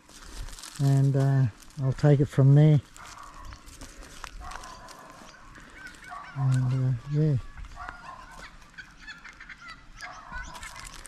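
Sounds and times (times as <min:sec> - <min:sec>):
faint outdoor background: 0:00.0 - 0:11.0
footsteps on gravel: 0:00.0 - 0:11.0
bird chirps: 0:04.3 - 0:11.0.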